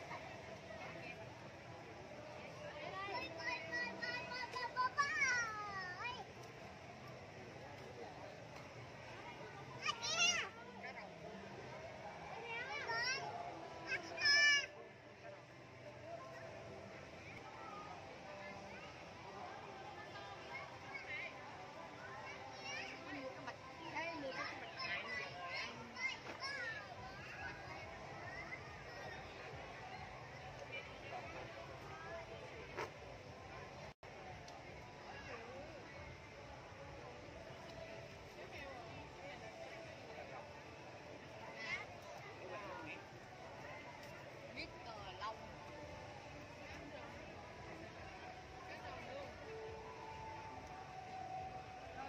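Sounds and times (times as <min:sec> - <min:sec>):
low crowd noise: 0:00.0 - 0:52.0
children chattering and calling: 0:02.3 - 0:06.5, 0:09.2 - 0:11.5, 0:12.2 - 0:15.4, 0:17.0 - 0:32.4.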